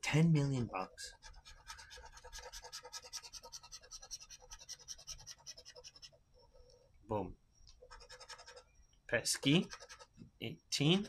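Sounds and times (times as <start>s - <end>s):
scratch-off ticket being scratched: 1.2s - 6.2s, 7.8s - 8.7s, 9.4s - 10.1s.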